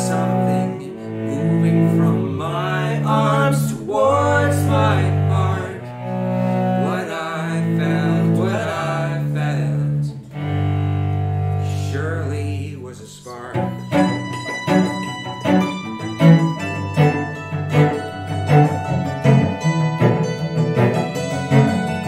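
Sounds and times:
hammered dulcimer ringing notes: 0:13.8 - 0:22.0.

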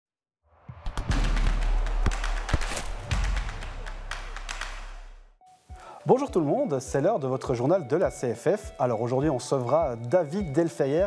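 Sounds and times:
sharp hits: 0:00.8 - 0:05.2.

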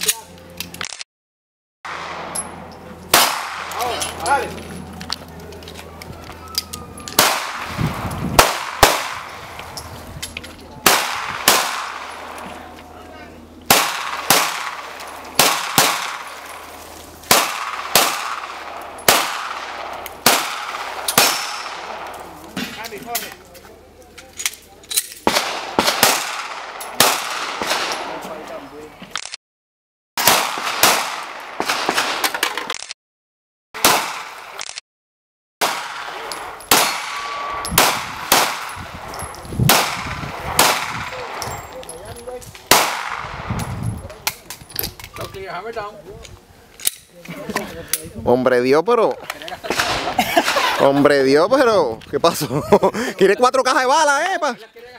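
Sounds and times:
pistol shots with echo: 0:03.1 - 0:04.5, 0:07.1 - 0:09.4, 0:10.8 - 0:12.4, 0:13.7 - 0:22.2, 0:25.2 - 0:28.2, 0:30.2 - 0:32.3, 0:33.8 - 0:34.6, 0:35.6 - 0:39.1, 0:39.7 - 0:41.8, 0:42.7 - 0:43.5.

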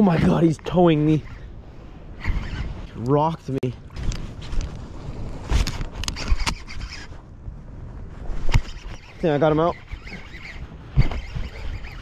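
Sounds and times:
wind rumble on microphone: 0:00.0 - 0:12.0
jacket sleeve rubbing on camera: 0:08.0 - 0:12.0.

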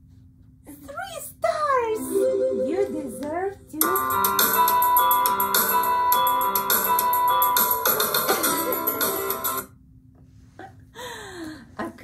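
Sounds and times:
piano music with rhythmic backing: 0:02.0 - 0:03.6.

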